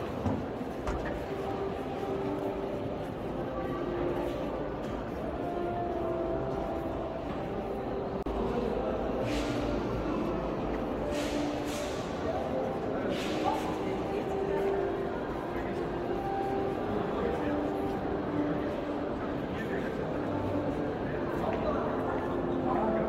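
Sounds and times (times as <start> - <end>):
indistinct chatter of many people: 0.0 - 23.0.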